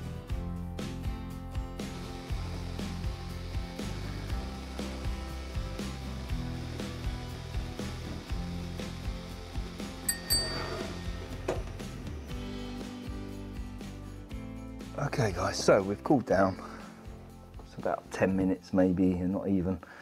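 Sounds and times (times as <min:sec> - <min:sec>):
background music with steady beat: 0:00.0 - 0:20.0
short high chiming notes: 0:10.1 - 0:11.5.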